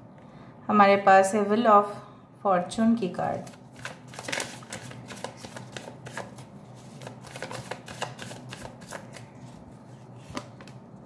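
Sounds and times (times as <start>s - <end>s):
cards shuffled by hand: 3.4s - 10.8s.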